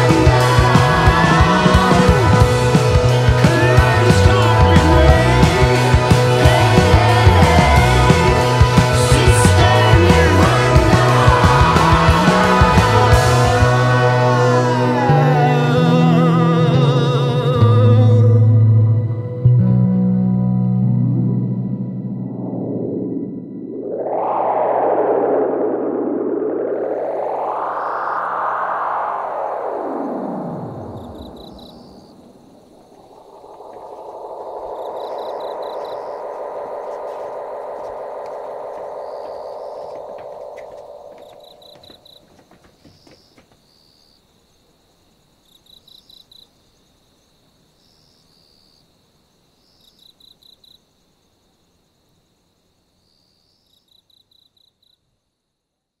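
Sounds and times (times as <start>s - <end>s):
effects-laden music sweeping down: 0.0s - 42.0s
muffled sustained sound: 21.0s - 41.7s
cricket chirps: 22.5s - 56.0s.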